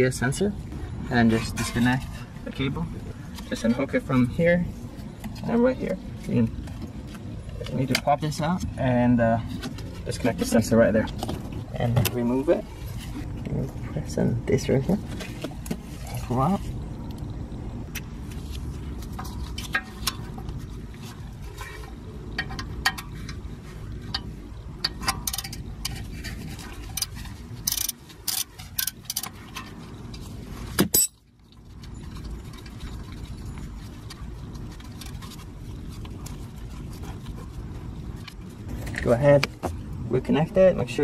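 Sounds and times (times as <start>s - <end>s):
wrench and plastic clinks: 30.9s - 31.2s.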